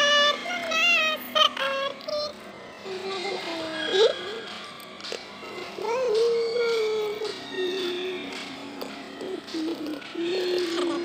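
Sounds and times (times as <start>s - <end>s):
high voice singing ornamented melody: 0.0s - 4.5s, 5.5s - 8.4s.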